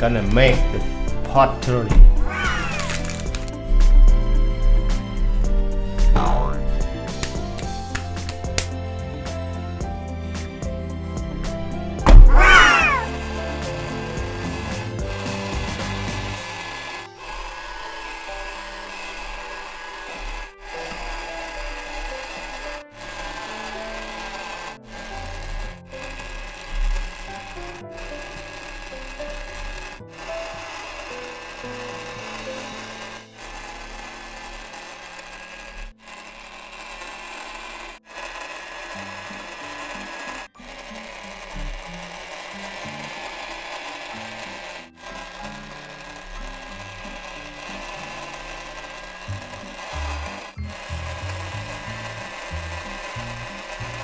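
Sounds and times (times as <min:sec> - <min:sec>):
small motor whining: 0:00.0 - 0:54.0.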